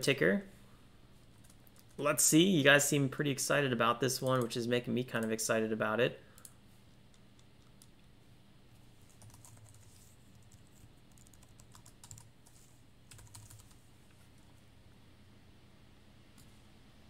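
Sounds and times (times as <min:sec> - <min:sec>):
steady low hum: 0:00.0 - 0:17.0
typing on computer keyboard: 0:09.1 - 0:12.3, 0:13.1 - 0:13.8.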